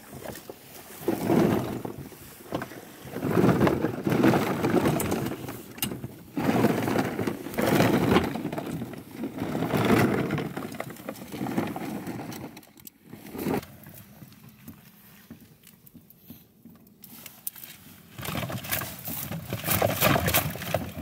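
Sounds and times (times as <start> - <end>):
plastic decoys rustling and knocking: 0.0 - 21.0.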